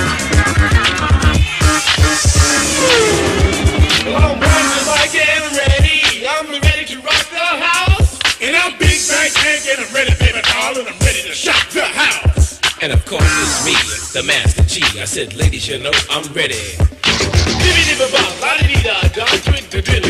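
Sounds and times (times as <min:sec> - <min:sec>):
rapping over a drum beat: 0:00.1 - 0:20.0.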